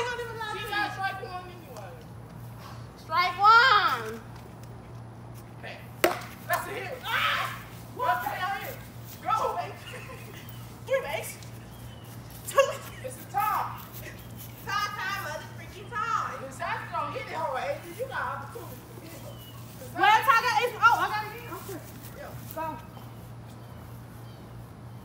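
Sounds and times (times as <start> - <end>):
voices calling out excitedly: 0.0 - 2.0, 2.8 - 4.3, 6.4 - 24.1
plastic bat striking ball: 6.0 - 6.6.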